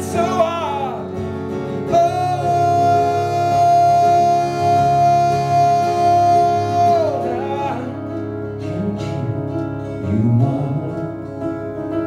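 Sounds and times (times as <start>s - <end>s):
man singing: 0.0s - 11.7s
strummed acoustic guitar: 0.0s - 12.0s.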